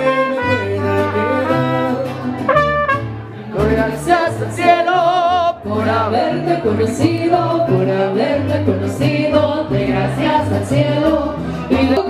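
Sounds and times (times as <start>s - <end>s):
low bass notes: 0.0s - 12.0s
woman singing with vibrato: 3.5s - 12.0s.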